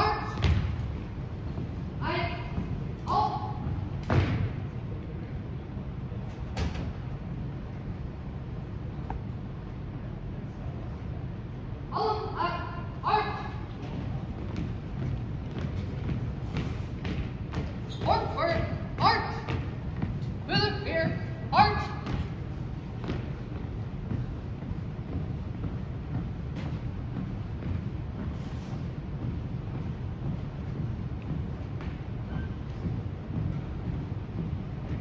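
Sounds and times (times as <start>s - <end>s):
marching on hardwood floor: 0.0s - 4.6s, 13.0s - 35.0s
shouted drill commands: 18.0s - 19.5s, 20.5s - 22.0s.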